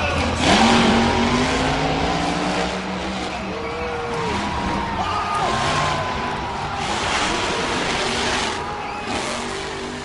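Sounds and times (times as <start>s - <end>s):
truck engine revving: 0.0s - 10.0s.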